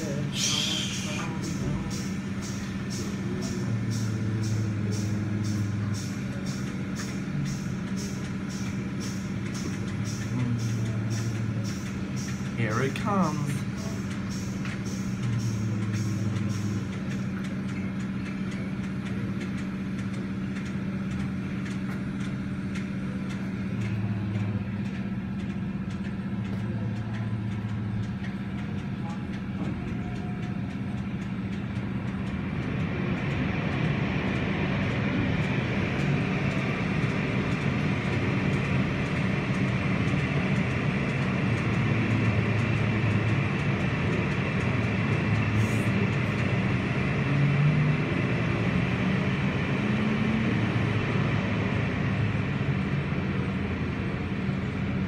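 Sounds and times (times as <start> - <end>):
low motor hum: 0.0 - 55.0.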